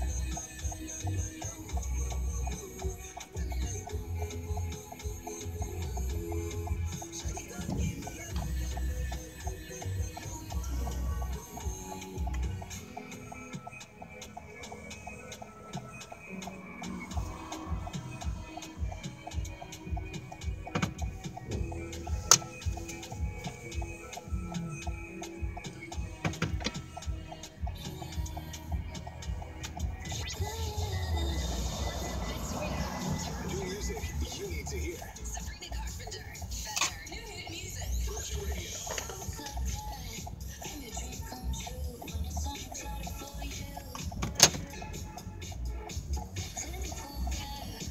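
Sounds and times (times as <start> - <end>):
pop music on car radio: 0.0 - 47.9
loud rush of noise: 31.1 - 34.4.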